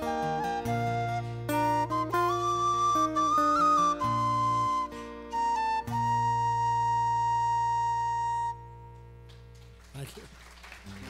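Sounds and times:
flute holding long note: 0.0s - 9.1s.

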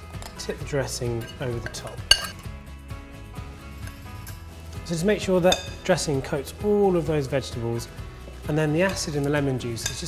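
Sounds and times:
quiet background music: 0.0s - 10.0s
metal spoon clinking on glass bowl: 1.2s - 2.5s, 5.5s - 5.8s, 9.8s - 10.0s.

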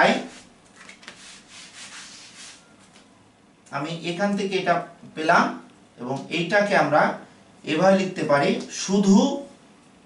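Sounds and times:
eraser rubbing on whiteboard: 1.1s - 2.6s.

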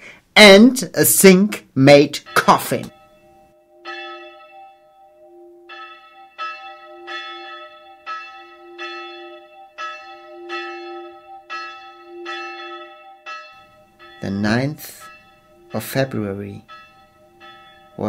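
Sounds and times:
church bell ringing: 2.1s - 18.0s.

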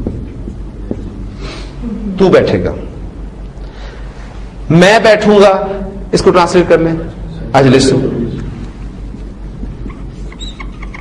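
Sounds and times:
steady low hum: 0.0s - 11.0s
whiteboard marker squeaking: 9.8s - 11.0s.

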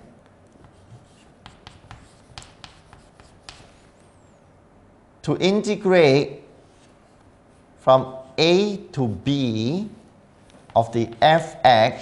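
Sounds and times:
chalk tapping and scratching: 0.5s - 4.2s.

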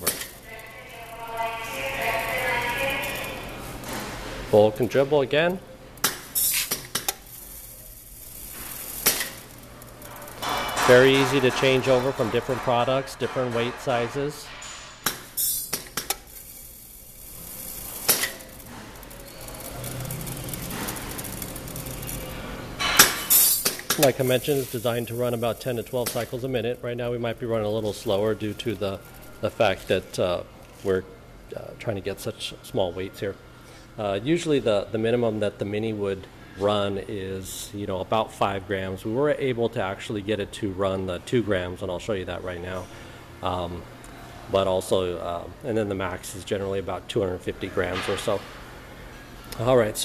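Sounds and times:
seeds streaming into metal bucket: 0.0s - 3.6s, 6.4s - 12.8s, 15.4s - 22.4s, 23.0s - 29.7s
vibratory feeder humming: 0.0s - 4.0s, 6.0s - 13.0s, 15.1s - 30.1s
sharp machine click: 8.4s - 11.6s, 15.0s - 16.6s, 17.4s - 22.2s.

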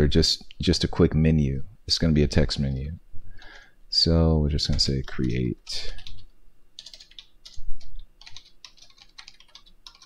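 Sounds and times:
computer keyboard typing: 4.7s - 10.0s.

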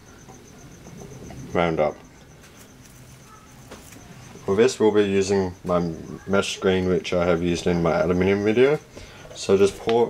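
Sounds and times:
high-pitched whine: 0.0s - 10.0s.

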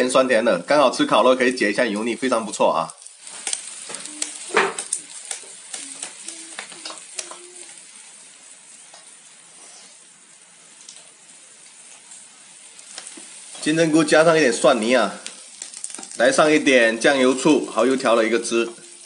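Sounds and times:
food sizzling in oil: 0.0s - 19.0s.

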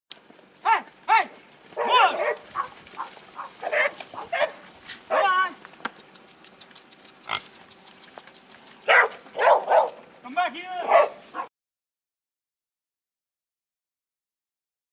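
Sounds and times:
horses squealing: 0.6s - 11.2s
dogs yipping: 0.7s - 10.1s, 10.8s - 11.5s.

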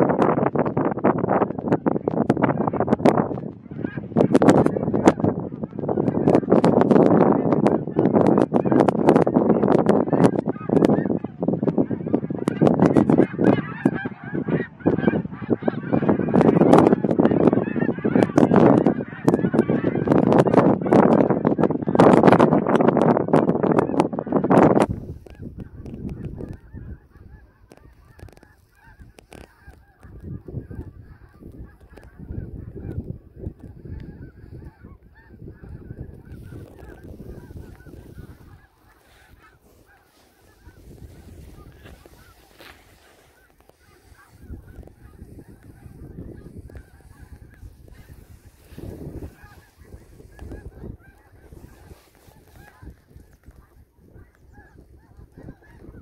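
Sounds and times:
flock of geese calling: 0.0s - 56.0s
wind gusts: 0.0s - 56.0s.

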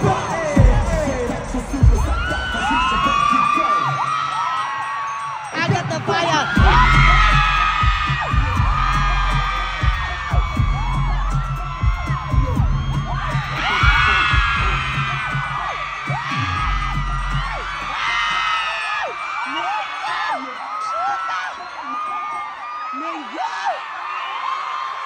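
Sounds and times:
deep throbbing bass beat: 0.0s - 3.3s, 6.6s - 18.6s
crowd screaming: 0.0s - 25.0s.

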